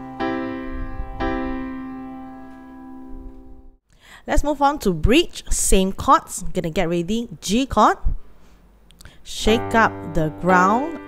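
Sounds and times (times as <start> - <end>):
piano chord ringing: 0.0 - 3.8, 9.6 - 11.0.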